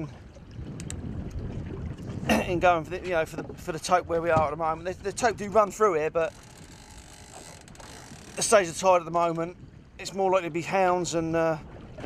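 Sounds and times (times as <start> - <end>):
sea noise: 0.0 - 12.0
wind: 0.0 - 12.0
faint sharp clicks: 0.8 - 1.0.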